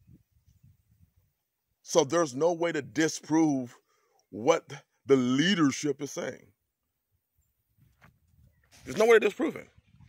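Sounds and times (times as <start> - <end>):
man talking: 1.9 - 6.5, 8.8 - 9.7.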